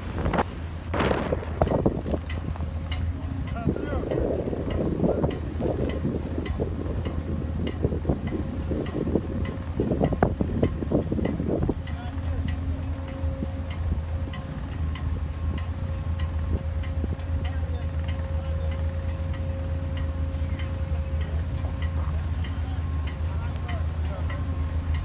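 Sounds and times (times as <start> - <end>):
wind on microphone: 0.0 - 23.4
low rumble: 0.0 - 25.0
faint regular ticking: 1.4 - 25.0.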